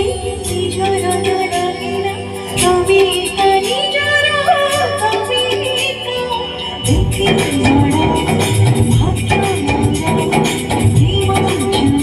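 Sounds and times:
live band accompaniment: 0.0s - 12.0s
woman singing: 0.0s - 12.0s.

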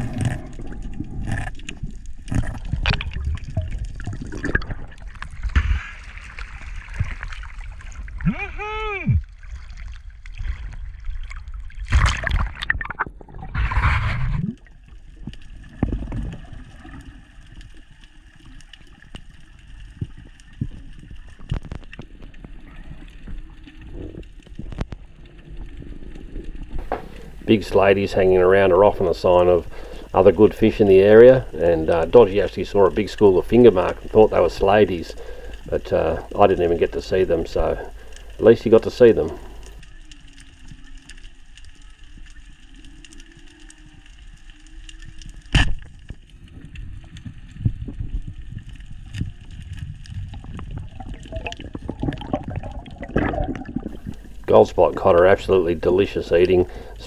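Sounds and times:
water sloshing and gurgling: 0.0s - 57.0s.

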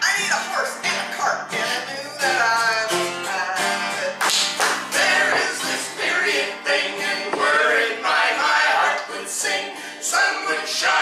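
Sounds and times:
acoustic guitar strumming: 0.0s - 11.0s
several voices singing: 3.2s - 11.0s.

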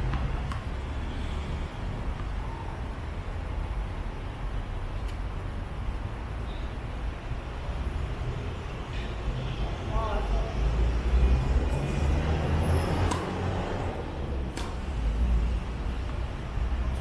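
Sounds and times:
low rumble of traffic: 0.0s - 17.0s
racket striking tennis ball: 13.0s - 13.5s, 14.5s - 14.9s.

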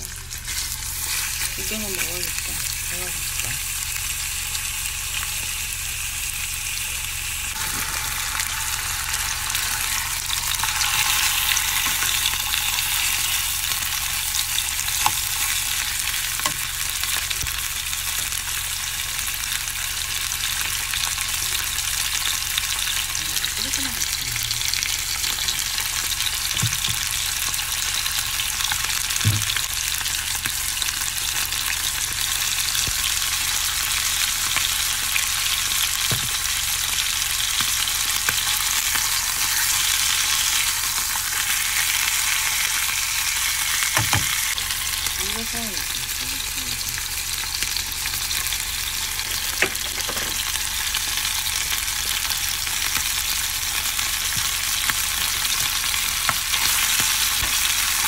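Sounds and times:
chicken sizzling in frying pan: 0.0s - 58.0s.

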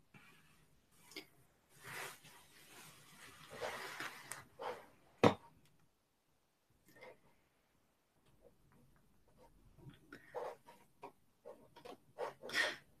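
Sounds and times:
soft rustling of beadwork: 0.0s - 5.1s.

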